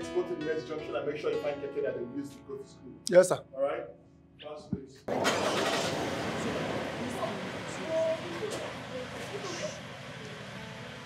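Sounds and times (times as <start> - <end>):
car engine starting and running: 5.1 - 11.0.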